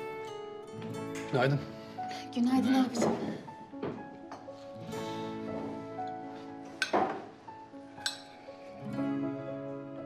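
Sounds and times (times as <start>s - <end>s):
soft background music: 0.0s - 10.0s
tableware clinking: 6.8s - 7.3s, 8.0s - 8.4s.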